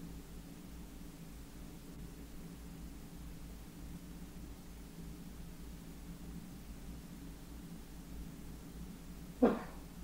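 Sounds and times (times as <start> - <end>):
steady low hum: 0.0 - 10.0
short sharp cry: 9.4 - 9.8.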